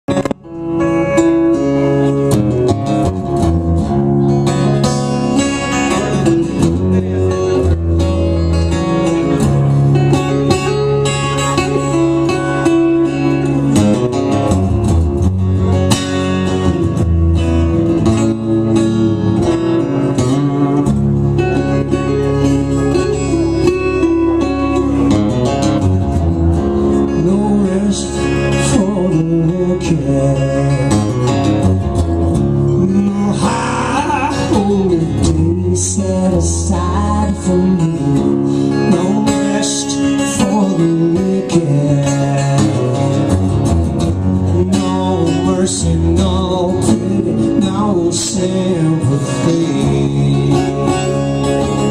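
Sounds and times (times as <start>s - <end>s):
two guitars playing: 0.0s - 51.9s.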